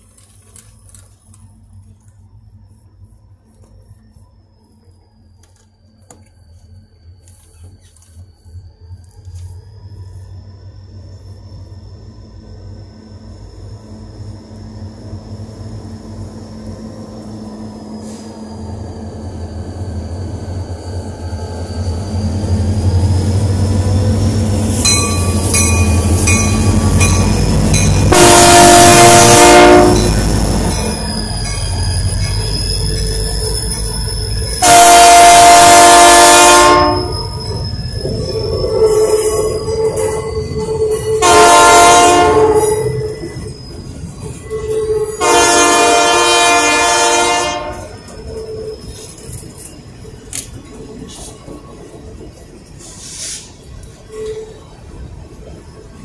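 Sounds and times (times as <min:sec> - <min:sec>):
locomotive engine rumble: 0:00.0 - 0:56.0
wheels squealing: 0:03.2 - 0:35.5, 0:36.4 - 0:46.6, 0:47.6 - 0:56.0
train horn blasts: 0:28.0 - 0:30.4, 0:34.6 - 0:37.3, 0:41.1 - 0:43.0, 0:44.6 - 0:48.0.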